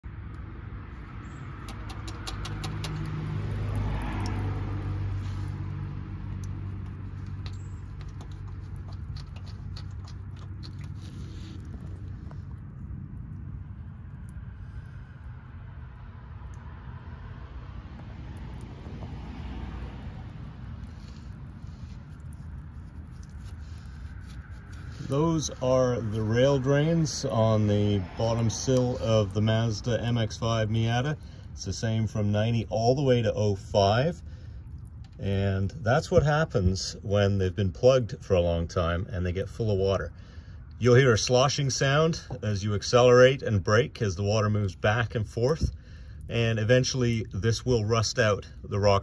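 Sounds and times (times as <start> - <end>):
steady low rumble: 0.0 - 48.8
water running onto pavement: 1.3 - 49.0.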